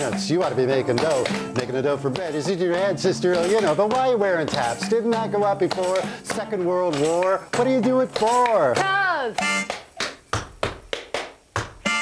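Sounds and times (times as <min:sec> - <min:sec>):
tap shoes on wooden board: 0:00.0 - 0:11.9.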